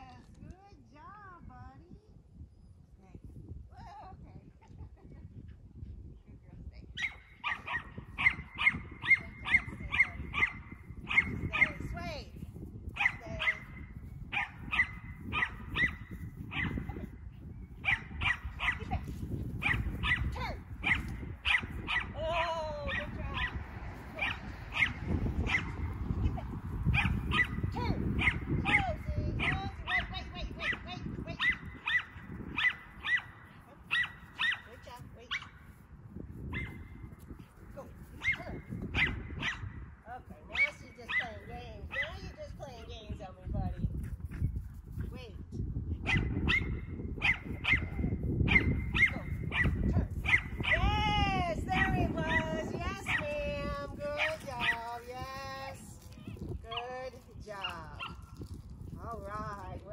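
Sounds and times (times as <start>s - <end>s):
dog barking high-pitched: 7.0s - 11.8s, 13.0s - 16.9s, 17.8s - 19.0s, 19.6s - 22.2s, 22.9s - 23.6s, 24.2s - 25.9s, 27.0s - 27.6s, 28.2s - 28.8s, 31.4s - 34.7s, 39.0s - 39.6s, 46.1s - 50.8s
low rumble: 12.2s - 32.6s.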